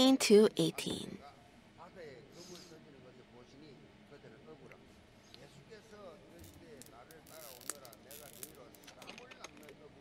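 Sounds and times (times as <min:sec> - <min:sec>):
faint distant voices: 0:00.0 - 0:10.0.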